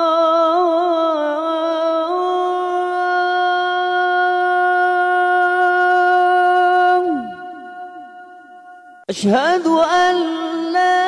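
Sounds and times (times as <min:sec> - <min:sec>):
man singing call to prayer: 0:00.0 - 0:11.0.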